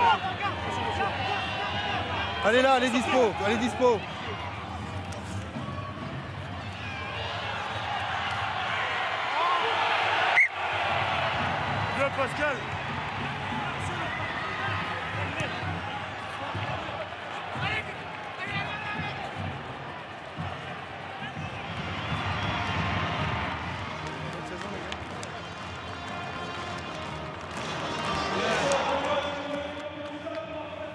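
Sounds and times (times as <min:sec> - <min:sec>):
stadium crowd noise: 0:00.0 - 0:30.9.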